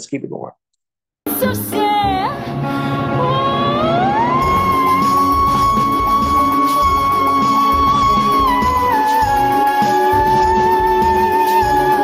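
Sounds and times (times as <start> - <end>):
backing track: 1.3 - 12.0
woman singing operatic high note: 3.1 - 12.0.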